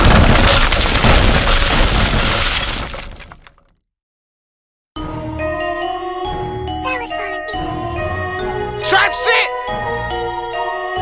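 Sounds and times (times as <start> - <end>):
glass shattering: 0.0 - 3.6.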